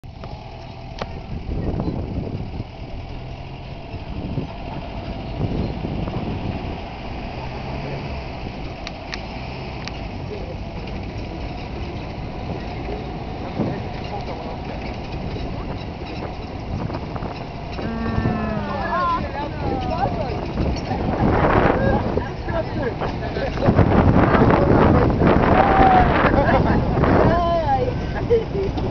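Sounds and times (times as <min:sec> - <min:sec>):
truck engine rumbling: 0:00.0 - 0:28.9.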